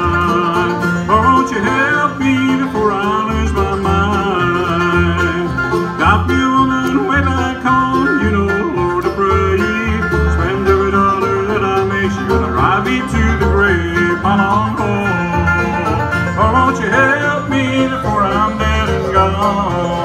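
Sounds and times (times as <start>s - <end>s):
banjo: 0.0s - 20.0s
bluegrass band playing: 0.0s - 20.0s
guitar: 0.0s - 20.0s.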